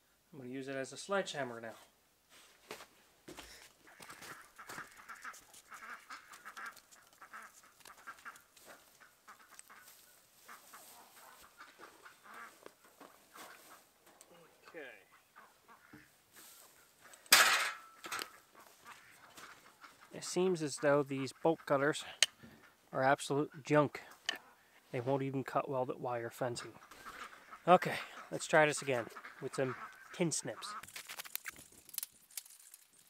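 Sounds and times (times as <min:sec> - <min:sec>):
chickens clucking: 0:03.9 - 0:22.8, 0:26.6 - 0:30.8.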